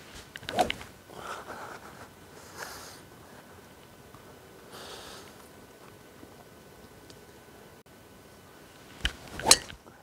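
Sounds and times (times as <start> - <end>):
golf club swish: 0.5 - 0.9, 9.0 - 9.8.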